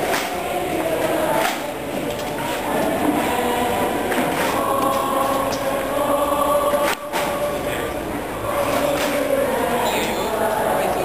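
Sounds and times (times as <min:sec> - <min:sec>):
choir singing a hymn: 0:00.0 - 0:11.0
crowd noise: 0:00.0 - 0:11.0.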